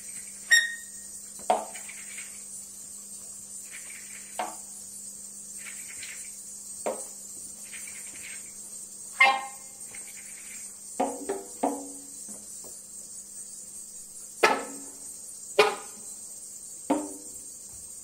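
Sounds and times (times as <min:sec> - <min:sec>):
faint soft chirping: 0:00.0 - 0:11.2
sharp knocks ringing: 0:15.6 - 0:16.0.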